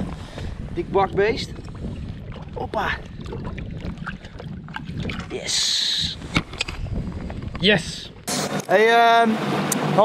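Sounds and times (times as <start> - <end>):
wind rumble on microphone: 0.0 - 8.3
water lapping against boat: 0.2 - 8.3.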